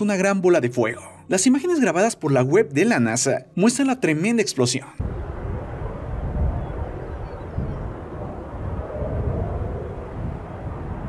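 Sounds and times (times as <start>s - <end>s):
distant low rumble: 5.0s - 11.0s.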